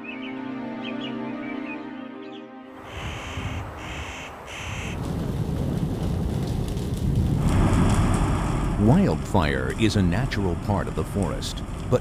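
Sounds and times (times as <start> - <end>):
crow cawing: 2.8 - 5.0
forest fire roaring: 2.8 - 12.0
low rumble: 5.0 - 12.0.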